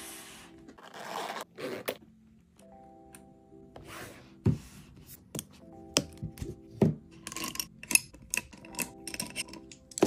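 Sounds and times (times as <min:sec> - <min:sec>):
soft background music: 0:00.0 - 0:10.0
metal zipper unzipping: 0:00.8 - 0:02.0.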